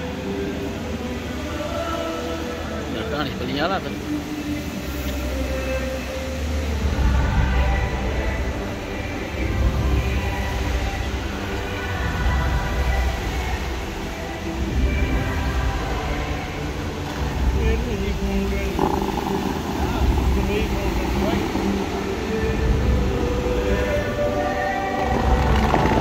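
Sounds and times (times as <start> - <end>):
fountain water jets spraying: 0.0 - 26.0.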